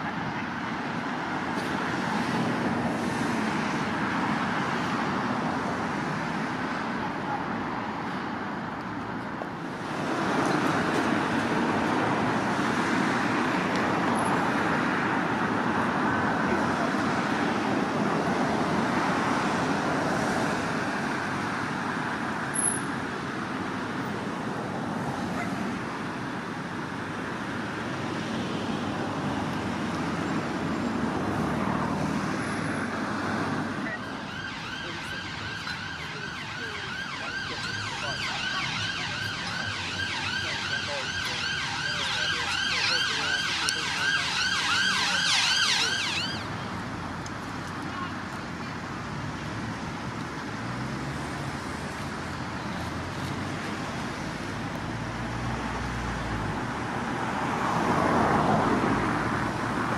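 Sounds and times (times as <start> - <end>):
street traffic passing: 0.0 - 59.9
emergency siren wailing: 32.8 - 46.6.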